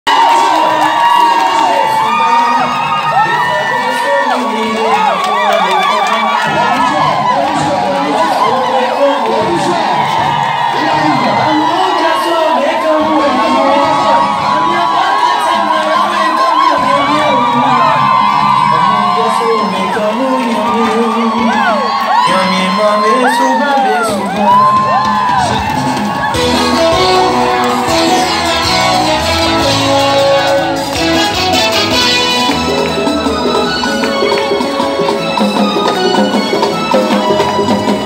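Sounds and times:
crowd cheering and shouting: 0.0 - 38.0.

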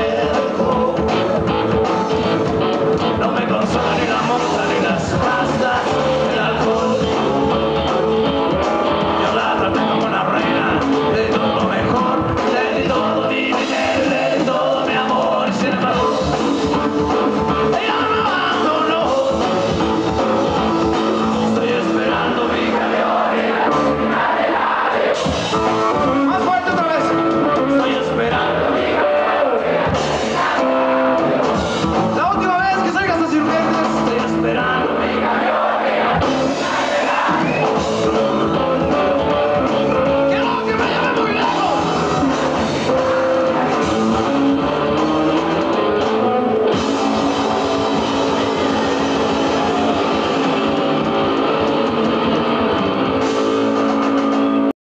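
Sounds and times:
bass guitar: 0.0 - 54.7
drum kit: 0.0 - 54.7
electric guitars: 0.0 - 54.7.

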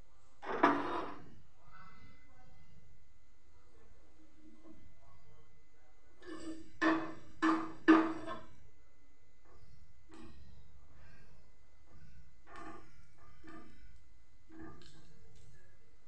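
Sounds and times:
spatula scraping: 0.4 - 1.3, 6.2 - 8.6.

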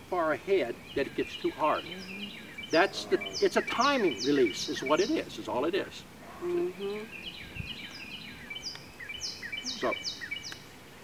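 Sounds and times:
songbirds chirping and singing: 0.0 - 10.7.

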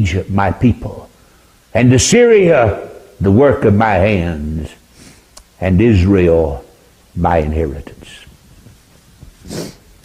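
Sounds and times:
man speaking: 0.0 - 1.1, 1.7 - 4.8, 5.6 - 8.3
man's sharp inhale: 4.9 - 5.3, 9.4 - 9.9.

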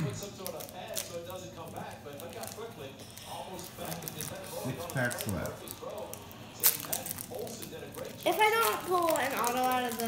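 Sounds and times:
foil wrapper tearing and crinkling: 0.0 - 10.0.

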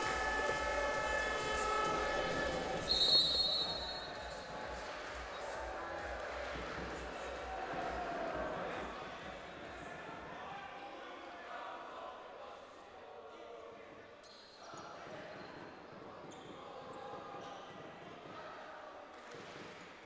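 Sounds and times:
held chord of steady tones: 0.0 - 4.7
hall noise: 0.0 - 8.8.

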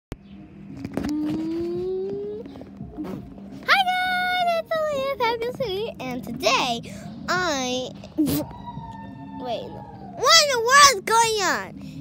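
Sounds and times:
girl humming rising tone: 1.1 - 3.2.

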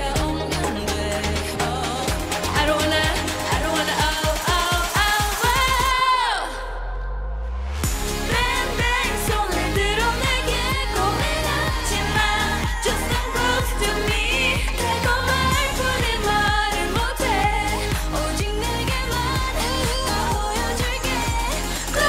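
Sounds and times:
electronic beat: 0.0 - 6.0, 7.8 - 22.0
women singing: 0.0 - 7.0, 8.1 - 22.0.

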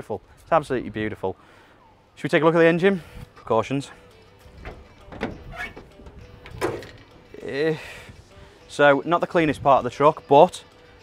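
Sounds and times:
car hood latch clicks and clunks: 4.5 - 7.2.

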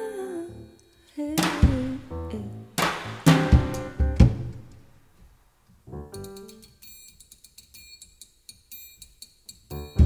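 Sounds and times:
drum and cymbal hits: 1.4 - 2.0, 2.8 - 4.6
jazz trio playing: 1.6 - 4.8, 5.9 - 6.6, 9.7 - 10.0.

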